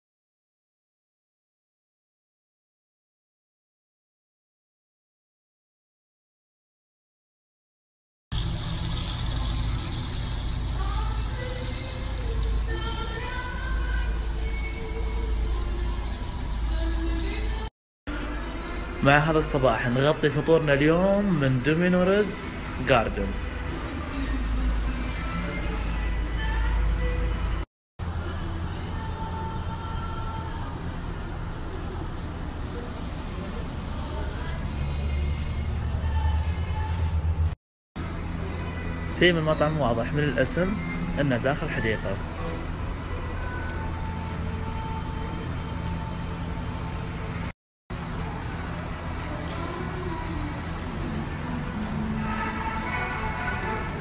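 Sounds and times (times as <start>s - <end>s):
fountain water falling into basin: 8.3s - 13.2s.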